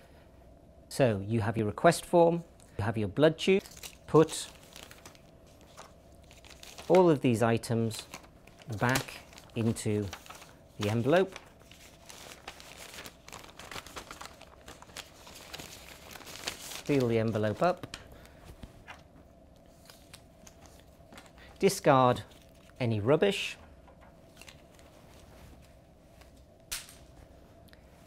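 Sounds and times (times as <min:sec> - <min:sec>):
plastic packaging crinkling: 0:03.6 - 0:22.8.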